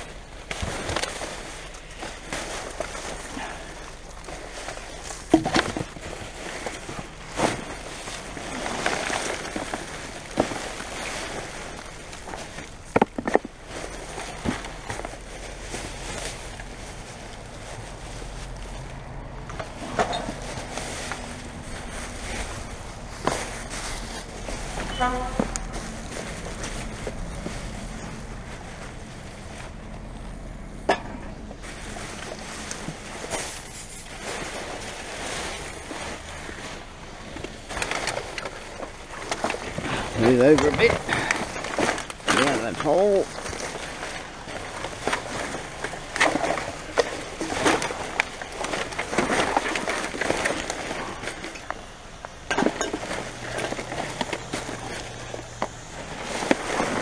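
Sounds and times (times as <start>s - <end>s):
plastic bags rustling: 0.0s - 57.0s.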